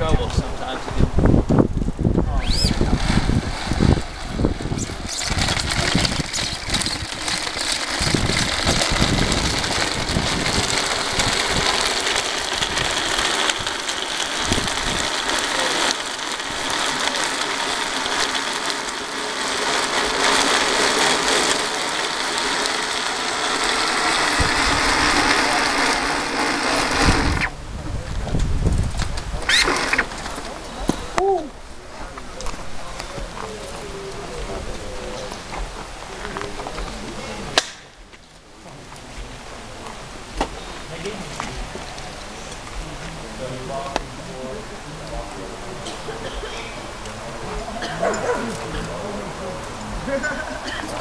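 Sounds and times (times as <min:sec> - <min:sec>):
bicycle-powered blender whirring: 0:01.5 - 0:27.6, 0:29.1 - 0:30.7, 0:46.9 - 0:51.0.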